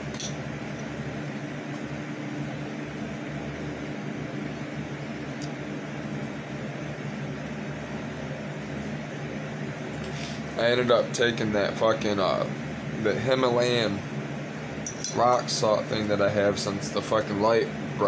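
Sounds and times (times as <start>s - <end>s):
space heater whirring: 0.0s - 18.0s.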